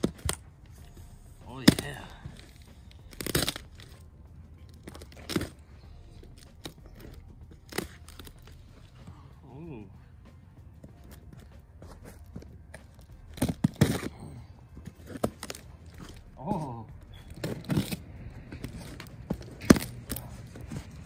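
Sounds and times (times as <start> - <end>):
packing tape ripping: 1.7 - 4.0, 6.2 - 8.6, 12.8 - 14.4, 15.0 - 16.4, 17.2 - 21.0.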